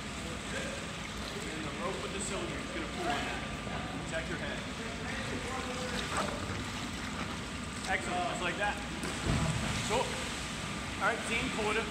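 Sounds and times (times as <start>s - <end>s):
pool water washing: 0.0s - 11.9s.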